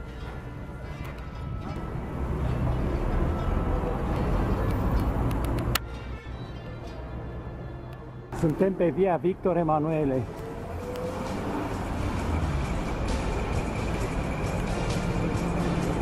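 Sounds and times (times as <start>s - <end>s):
street traffic rumble: 0.0s - 16.0s
vehicle passing close by: 10.2s - 16.0s.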